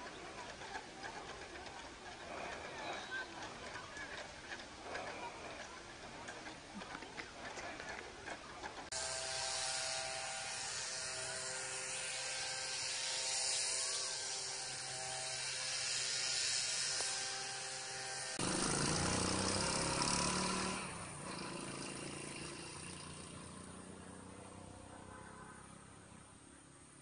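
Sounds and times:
steady high-pitched hiss: 0:08.9 - 0:24.3.

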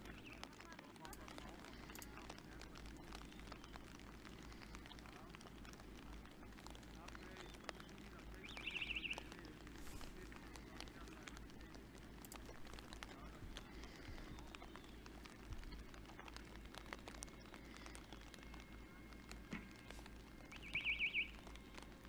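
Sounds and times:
rain hiss: 0:00.0 - 0:22.0
raindrop clicks: 0:00.0 - 0:22.0.

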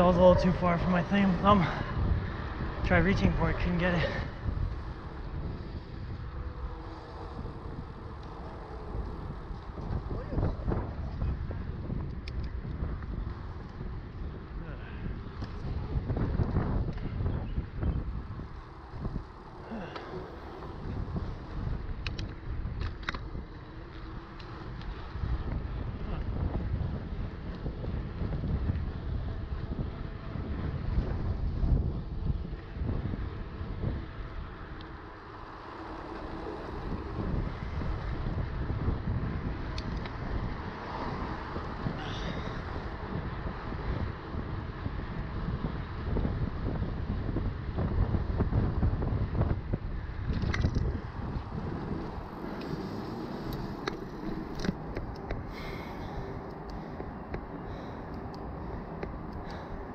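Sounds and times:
bike tyres rumbling on pavement: 0:00.0 - 0:59.9
wind buffeting microphone: 0:00.0 - 0:59.9.

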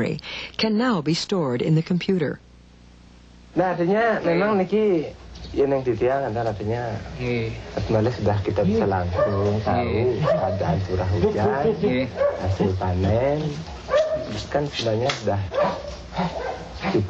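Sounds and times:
people talking: 0:00.0 - 0:02.4, 0:03.6 - 0:15.5, 0:16.2 - 0:17.0.

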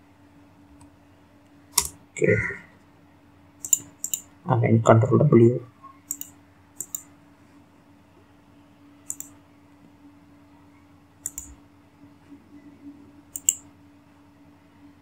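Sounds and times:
faint steady hum: 0:00.0 - 0:15.0
computer mouse clicks: 0:03.6 - 0:04.3, 0:06.1 - 0:07.1, 0:09.1 - 0:09.4, 0:11.2 - 0:11.6, 0:13.3 - 0:13.7.

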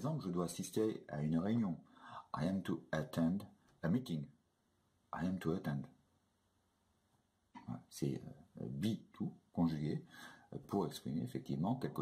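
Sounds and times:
man speaking: 0:00.0 - 0:04.4, 0:05.1 - 0:06.0, 0:07.6 - 0:12.0.

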